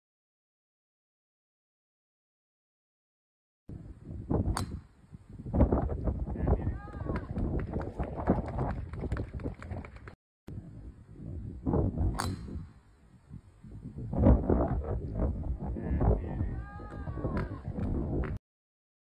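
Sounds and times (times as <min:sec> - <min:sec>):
golf club striking ball: 0:04.5 - 0:05.0, 0:12.1 - 0:12.8.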